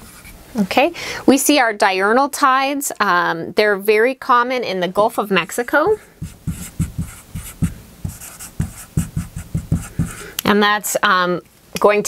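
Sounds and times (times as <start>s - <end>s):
marker writing on a whiteboard: 5.4s - 10.3s.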